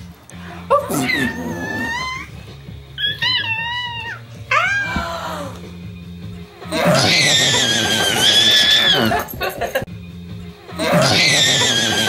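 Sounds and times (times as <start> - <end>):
baby squealing: 0.8 - 2.3, 3.0 - 5.6, 6.8 - 9.3, 10.9 - 12.0.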